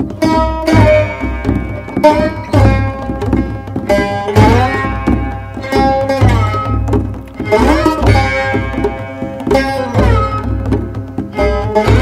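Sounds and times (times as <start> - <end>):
deep hand-drum strokes: 0.0 - 12.0
plucked string music: 0.0 - 12.0.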